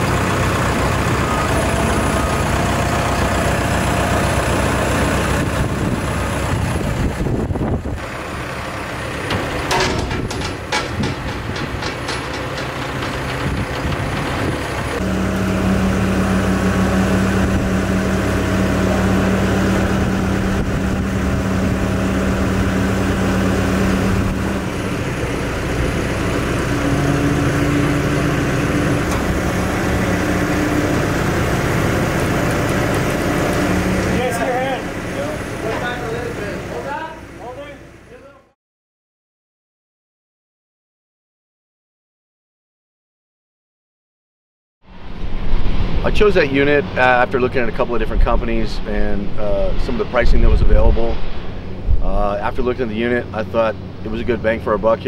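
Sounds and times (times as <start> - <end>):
diesel engine running: 0.0 - 38.5, 44.9 - 55.0.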